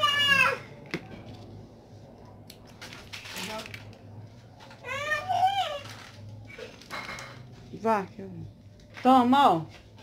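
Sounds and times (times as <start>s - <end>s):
child's high voice: 0.0s - 0.7s, 4.8s - 6.0s.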